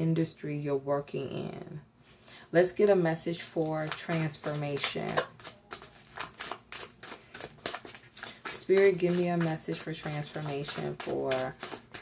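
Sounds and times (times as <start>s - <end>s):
cards being shuffled: 3.6s - 12.0s.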